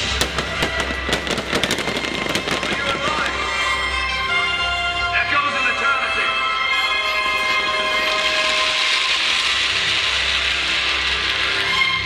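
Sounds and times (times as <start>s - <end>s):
fireworks crackling and popping: 0.0s - 4.0s, 7.4s - 12.0s
loud music: 0.0s - 12.0s.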